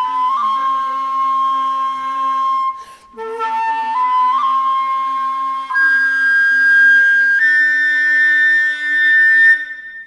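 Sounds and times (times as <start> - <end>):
flute holding long notes: 0.0 - 10.0.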